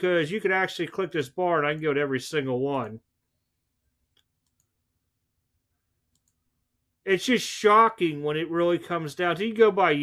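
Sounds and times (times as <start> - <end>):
computer mouse clicks: 3.8 - 4.8, 6.0 - 6.5.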